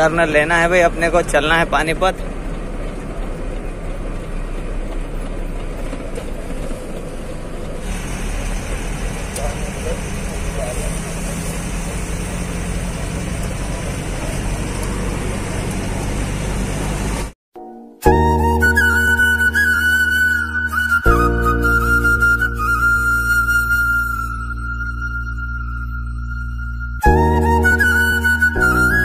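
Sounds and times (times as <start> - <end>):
truck engine drone from cab: 0.0 - 17.4, 18.0 - 29.0.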